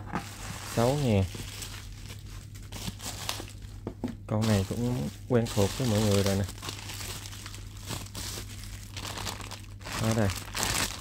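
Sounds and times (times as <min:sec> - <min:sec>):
plastic bag crinkling: 0:00.2 - 0:03.7, 0:04.4 - 0:11.0.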